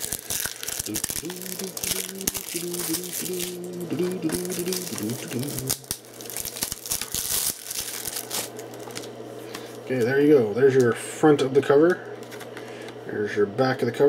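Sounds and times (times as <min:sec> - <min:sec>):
plastic shrink-wrap crinkling: 0:00.0 - 0:09.8.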